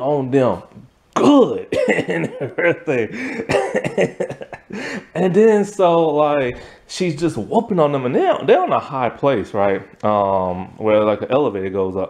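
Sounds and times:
person laughing: 1.3s - 5.2s.

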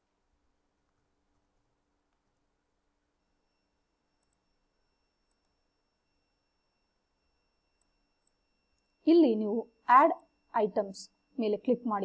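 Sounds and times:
faint high-pitched electronic whine: 0.0s - 12.0s.

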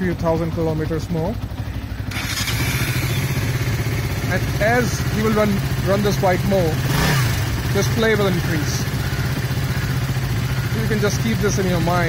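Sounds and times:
motorcycle engine idling: 0.0s - 12.0s.

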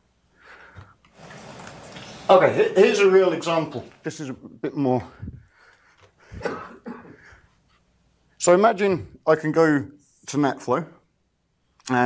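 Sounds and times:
person coughing: 6.4s - 7.3s.

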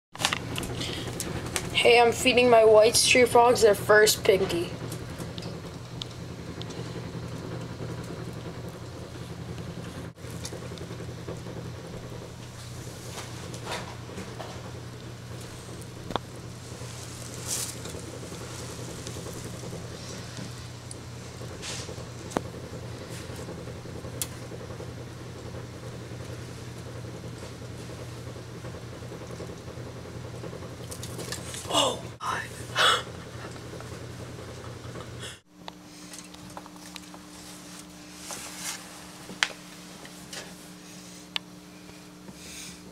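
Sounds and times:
steady low hum: 0.2s - 42.9s.

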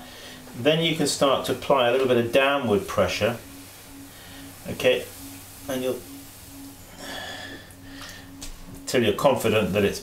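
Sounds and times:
potter's wheel humming: 0.0s - 10.0s.

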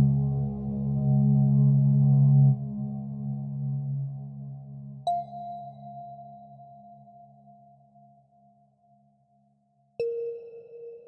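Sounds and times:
low drone: 0.0s - 5.0s.

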